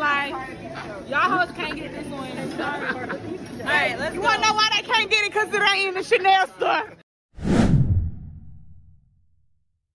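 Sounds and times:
whoosh sweeping down into rumble: 7.4 - 9.2.

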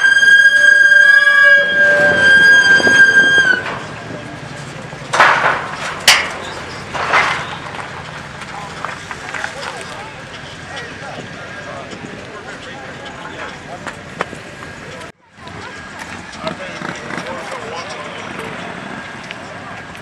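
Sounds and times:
shrill high-pitched tone: 0.0 - 4.1
sharp crack: 3.4 - 10.1.

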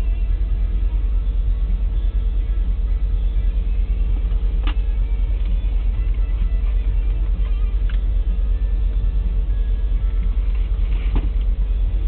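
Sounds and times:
faint steady whine: 0.0 - 12.0
freight train low rumble: 0.0 - 12.0.

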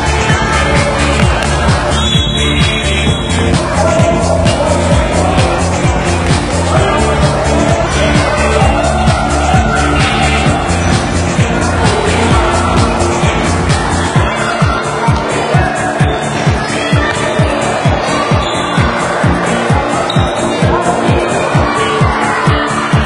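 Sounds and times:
electronic music: 0.0 - 23.0
sustained bass line: 0.0 - 23.0.

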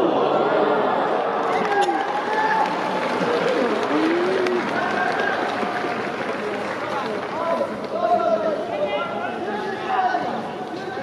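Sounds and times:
stadium crowd noise: 0.0 - 11.0.

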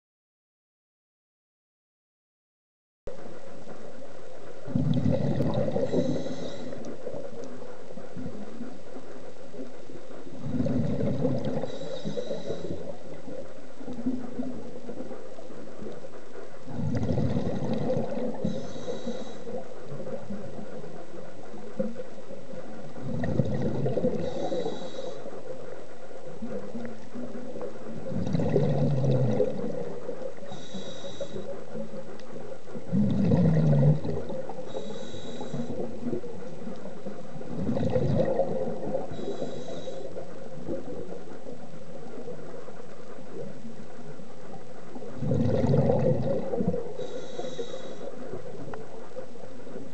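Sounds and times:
diver breathing through regulator: 4.7 - 7.3, 10.4 - 13.1, 16.7 - 20.2, 23.0 - 25.5, 28.1 - 31.7, 32.9 - 36.6, 37.6 - 40.3, 45.2 - 48.4.

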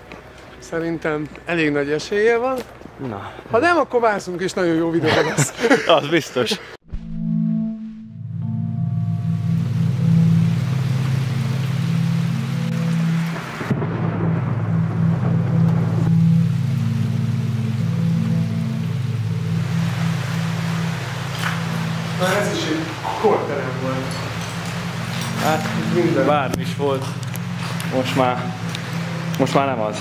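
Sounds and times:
low drone: 6.9 - 30.0.

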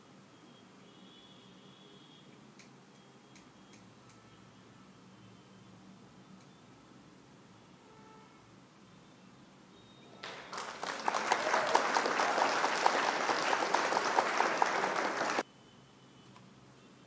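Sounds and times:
crowd clapping: 10.2 - 15.4.

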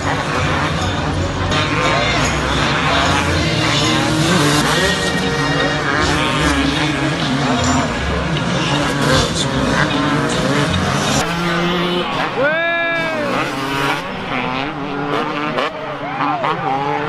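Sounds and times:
motocross bike engines revving: 0.0 - 17.0.

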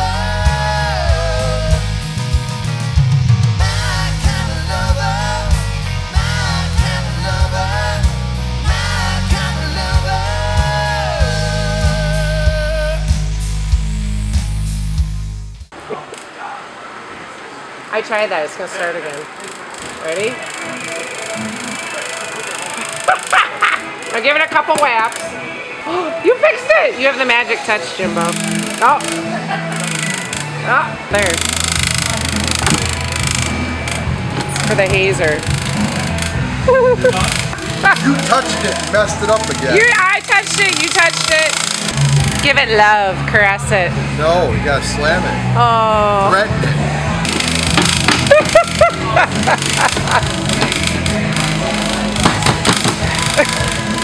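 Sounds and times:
drum kit steady beat: 0.0 - 15.7, 31.2 - 43.8, 47.2 - 54.0
bending melody line: 26.2 - 54.0
electric guitars: 28.0 - 54.0
fan motor hum: 28.1 - 43.1.

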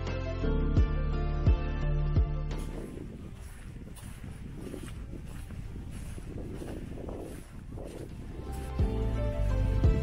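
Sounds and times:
footsteps on sand: 2.4 - 10.0
wind noise on microphone: 2.5 - 10.0.

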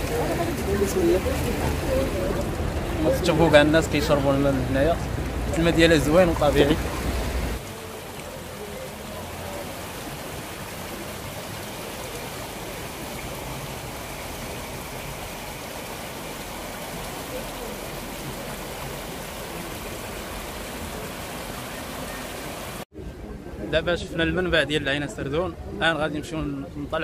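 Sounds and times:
water rushing over rocks: 0.0 - 22.9.

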